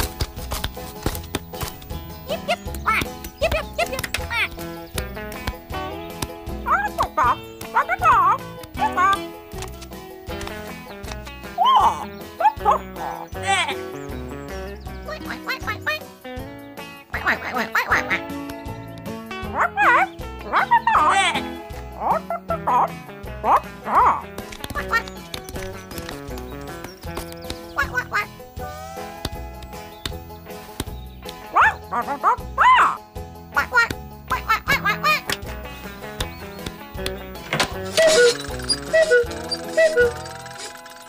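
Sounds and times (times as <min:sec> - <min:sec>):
cartoon background music: 0:00.0 - 0:41.0
quacking animal character calls: 0:11.6 - 0:13.8
gliding animal-like calls: 0:37.8 - 0:41.0.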